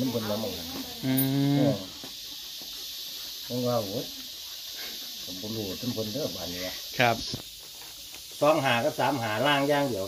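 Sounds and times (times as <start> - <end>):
man humming mmm: 1.0 - 1.9.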